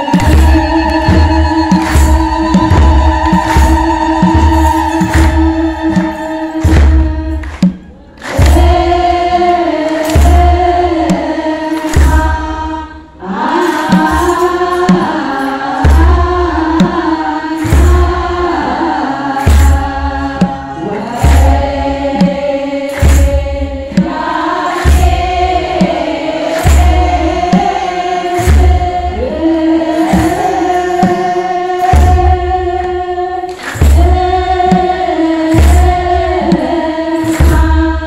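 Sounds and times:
choir singing held notes: 0.0 - 38.0
slow steady drum beat: 0.0 - 38.0.

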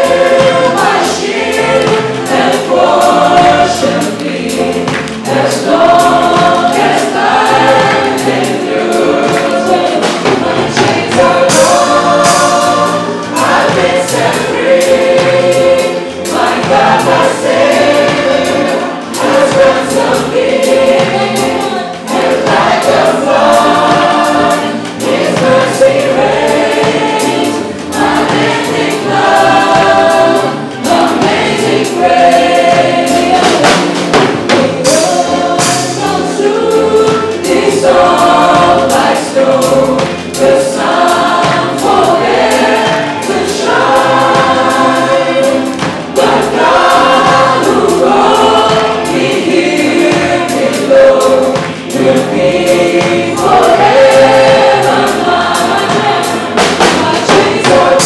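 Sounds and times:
many voices singing together: 0.0 - 58.0
worship band playing: 0.0 - 58.0.

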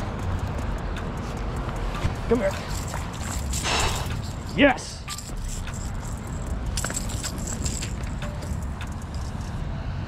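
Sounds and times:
fishing tackle clicks and rattles: 0.0 - 9.6.

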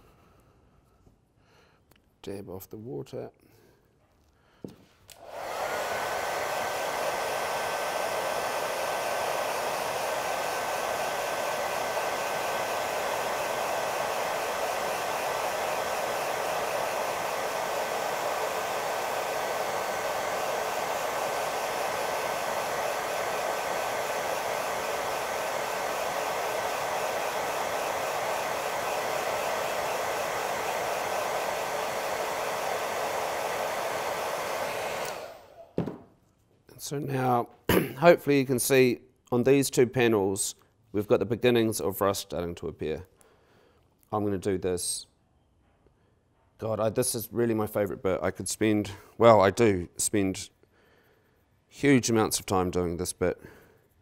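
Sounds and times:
hair dryer blowing with whistle: 5.1 - 36.0.

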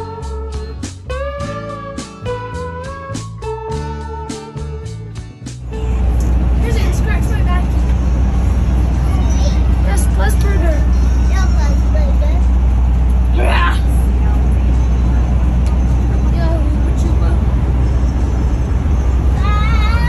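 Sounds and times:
road and engine rumble: 0.0 - 20.0
children's voices: 8.9 - 12.5, 19.2 - 20.0.

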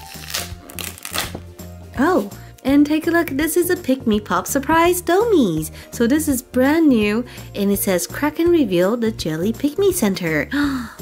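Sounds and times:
background music with bass: 0.0 - 11.0.

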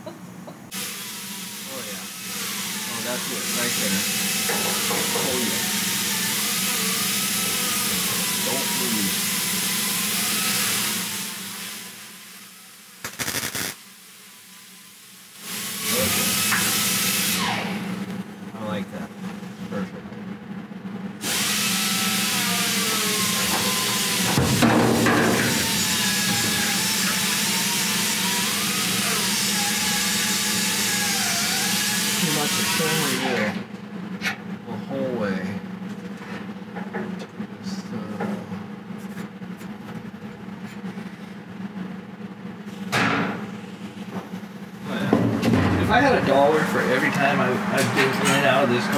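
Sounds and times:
welding arc crackling and hissing: 2.8 - 17.4.

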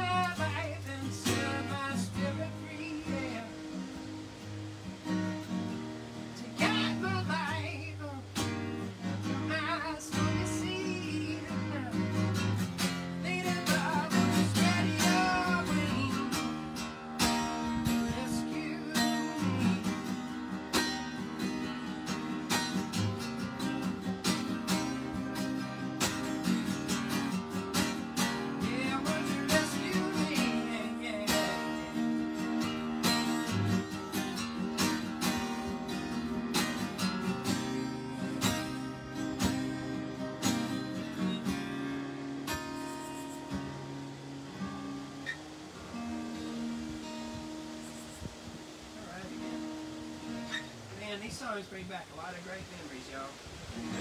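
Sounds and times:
acoustic guitar playing: 0.0 - 54.0.

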